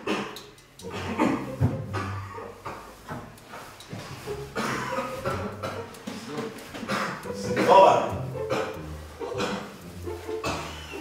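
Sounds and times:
paper strip rustling: 2.5 - 11.0.

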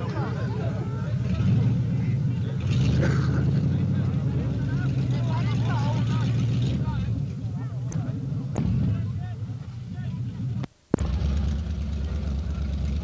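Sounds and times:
spectators' voices: 0.0 - 10.6
jeep engine running: 0.0 - 13.0.

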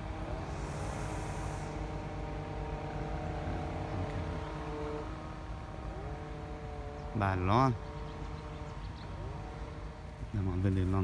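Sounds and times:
motor humming: 0.0 - 11.0.

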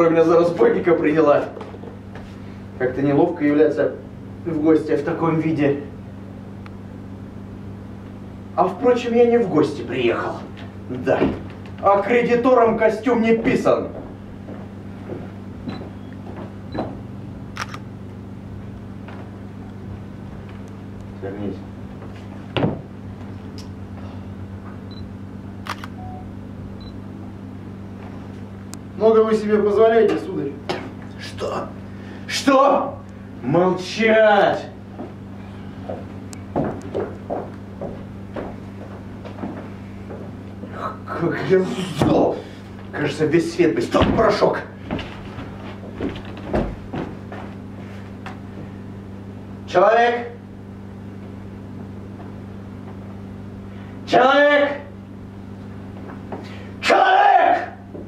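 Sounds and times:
steady low hum: 0.0 - 58.0
sharp click: 25.6 - 26.0.

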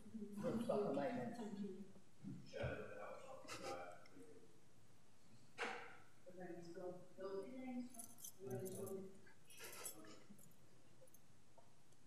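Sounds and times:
light clinks and rattles: 7.6 - 11.3.

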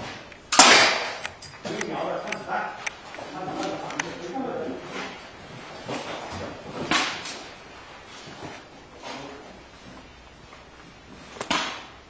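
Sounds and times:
paintball markers firing: 0.5 - 1.3.

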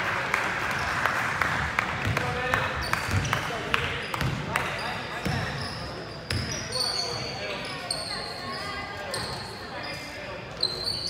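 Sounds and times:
players' voices echoing: 0.0 - 11.0
sneaker squeaks: 2.8 - 11.0.

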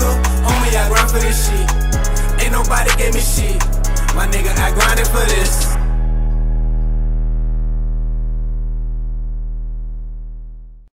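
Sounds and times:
deep electronic bass note: 0.0 - 10.9.

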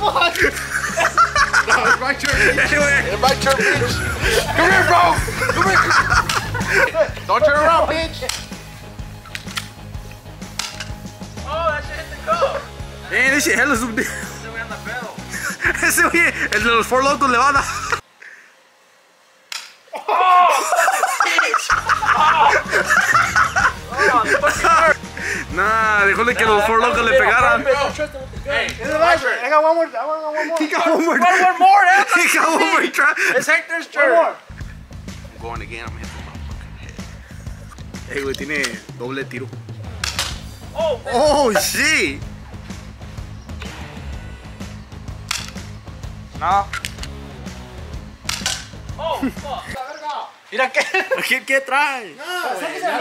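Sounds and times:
background music with steady beat: 0.0 - 18.0, 21.7 - 29.3, 34.5 - 49.8
bb gun firing pop: 40.0 - 40.5, 48.2 - 48.8.

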